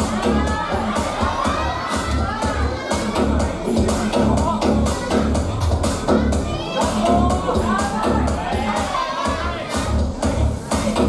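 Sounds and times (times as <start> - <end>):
crowd cheering and shouting: 0.0 - 11.0
loud music with heavy bass beat: 0.0 - 11.0.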